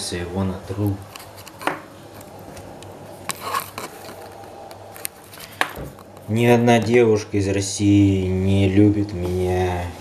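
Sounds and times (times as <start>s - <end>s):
faint steady background: 0.0s - 10.0s.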